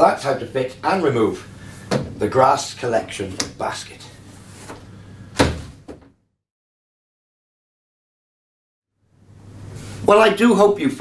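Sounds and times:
hollow plastic thunk: 0:01.9 - 0:02.2, 0:05.4 - 0:06.1.

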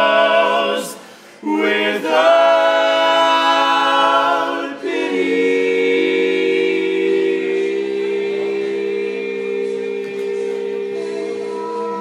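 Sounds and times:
male quartet singing in harmony: 0:00.0 - 0:12.0.

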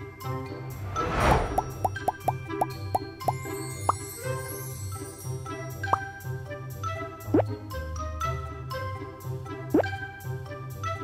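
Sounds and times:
light background music: 0:00.0 - 0:11.0
whoosh: 0:00.6 - 0:02.3
rising bloop pops: 0:01.3 - 0:03.4.

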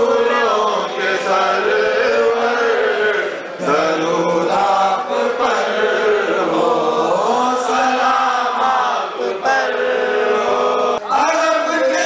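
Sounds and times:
voices chanting a hymn: 0:00.0 - 0:12.0.

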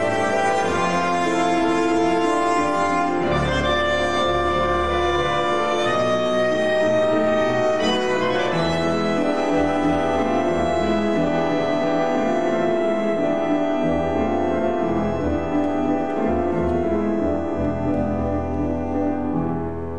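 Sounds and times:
bandoneon: 0:00.0 - 0:19.9
double bass: 0:00.0 - 0:19.9
violin melody: 0:00.0 - 0:19.9.

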